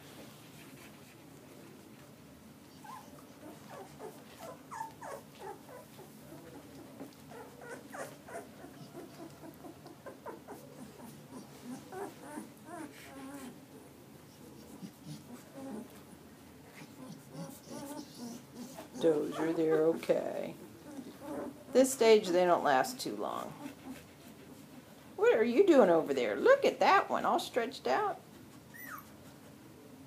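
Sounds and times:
puppies whimpering and squeaking: 2.7 - 6.7, 7.3 - 13.5, 16.8 - 21.6, 28.6 - 29.3.

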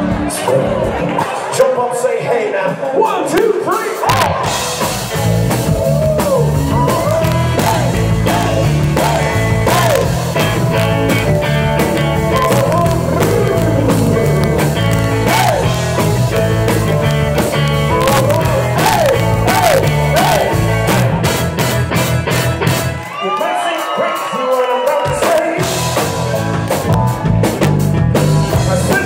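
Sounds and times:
drums: 0.0 - 29.0
bass guitar: 4.0 - 23.1, 25.1 - 29.0
electric guitar: 4.0 - 23.1.

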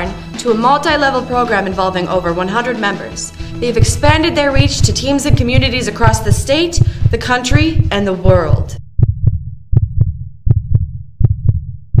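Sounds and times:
heartbeat double beat: 3.5 - 12.0.

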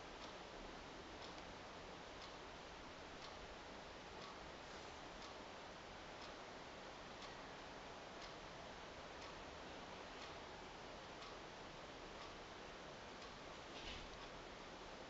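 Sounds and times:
faint ticking: 0.0 - 15.0
room hiss: 0.0 - 15.0.

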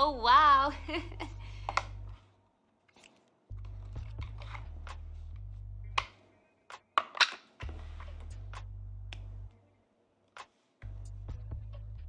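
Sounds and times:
low steady hum: 0.0 - 2.8, 3.5 - 6.5, 7.6 - 9.8.

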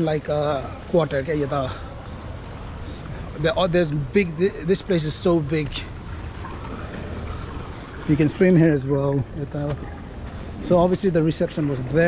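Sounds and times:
wind buffeting microphone: 1.9 - 12.0.

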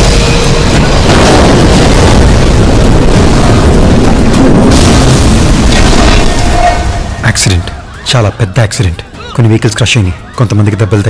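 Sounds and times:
vehicle crash rumble: 0.0 - 8.0
deep booming: 0.0 - 8.1.

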